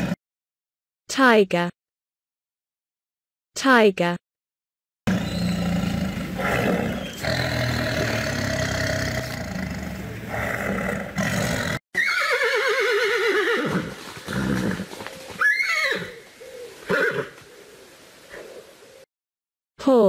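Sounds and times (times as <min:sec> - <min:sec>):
tiger growling and roaring: 0:05.1 - 0:11.8, 0:13.8 - 0:18.8
horse whinnying: 0:10.3 - 0:16.2, 0:16.8 - 0:17.4.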